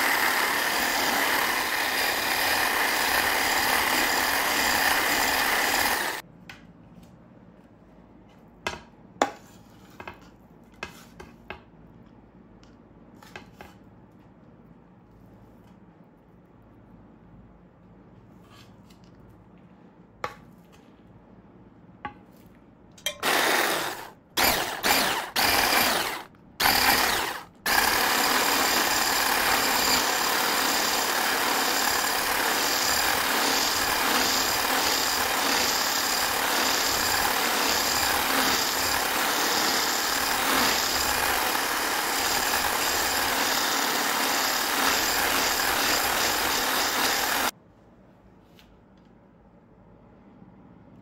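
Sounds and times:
hand blender mixing in glass bowl: 0:23.1 - 0:47.5.

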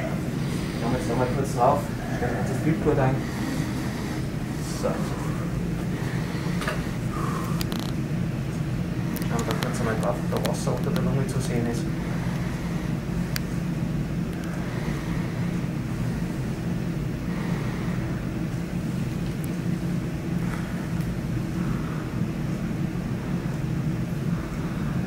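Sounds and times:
low machine hum: 0:00.0 - 0:25.0.

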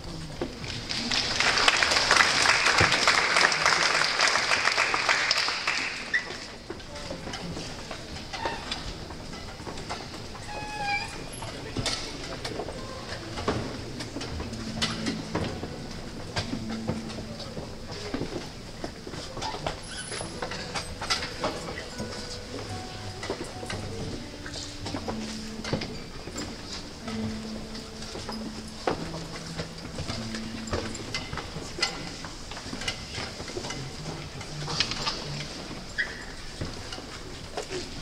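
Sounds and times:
classical guitar ensemble playing: 0:00.0 - 0:38.0
scattered clicks and knocks: 0:11.4 - 0:38.0.

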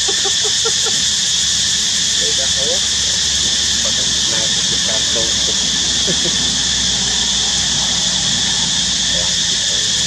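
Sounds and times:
steady high-pitched hiss: 0:00.0 - 0:10.0
faint voices: 0:03.4 - 0:06.6, 0:08.2 - 0:09.5.

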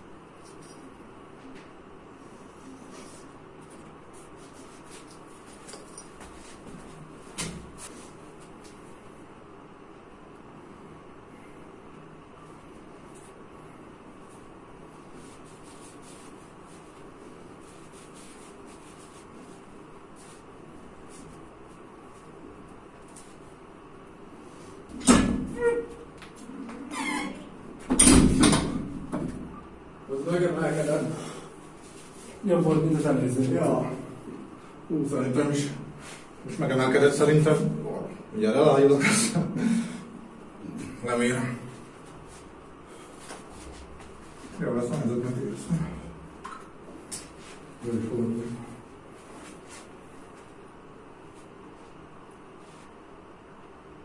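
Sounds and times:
faint shuffling: 0:00.3 - 0:09.2, 0:12.4 - 0:24.9, 0:30.1 - 0:34.9, 0:41.0 - 0:53.3.

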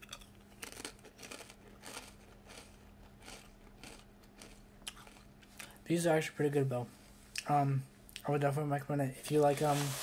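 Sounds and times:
person chewing potato chip: 0:00.0 - 0:05.7.

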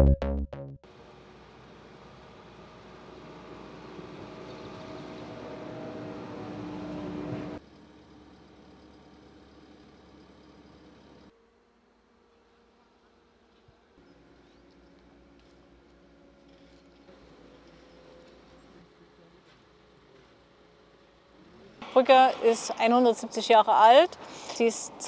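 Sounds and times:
excavator engine humming: 0:00.9 - 0:25.0.

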